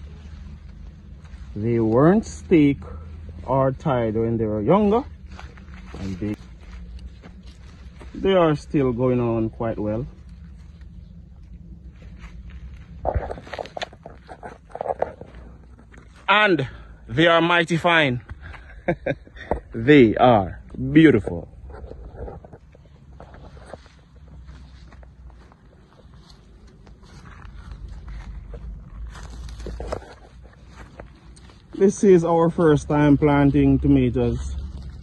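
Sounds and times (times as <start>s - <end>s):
dry straw crunching: 0.0s - 16.9s, 19.7s - 35.0s
plant leaves rustling: 0.0s - 18.0s, 19.7s - 35.0s
low microphone rumble: 0.0s - 35.0s.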